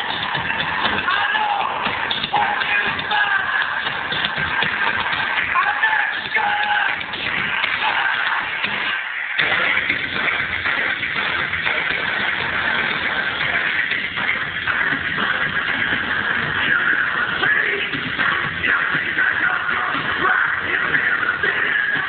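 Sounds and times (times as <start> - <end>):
loud bass-heavy music from subwoofer: 0.0 - 22.0.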